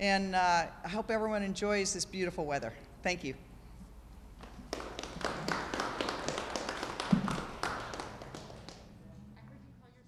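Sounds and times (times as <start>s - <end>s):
small group clapping: 4.4s - 9.3s.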